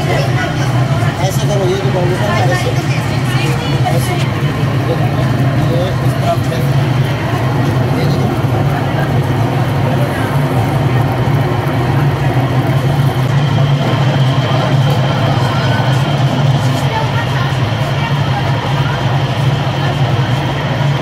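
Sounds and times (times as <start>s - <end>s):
people talking: 0.0s - 21.0s
potter's wheel motor hum: 0.0s - 21.0s.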